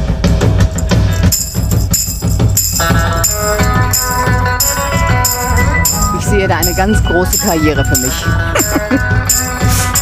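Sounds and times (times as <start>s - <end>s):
drum kit and bass beat: 0.0s - 10.0s
tambourine shaken: 0.8s - 10.0s.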